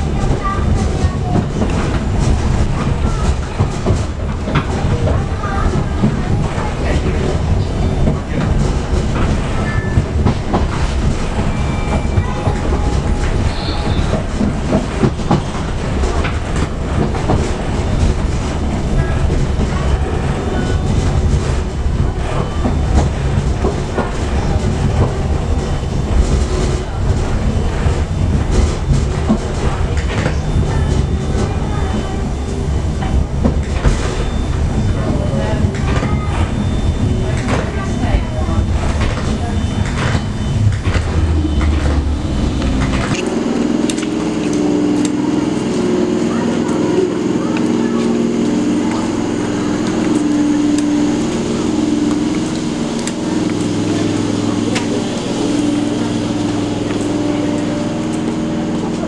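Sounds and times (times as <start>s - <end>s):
train rumbling on rails: 0.0s - 59.0s
wheels clacking over rail joints: 0.0s - 59.0s.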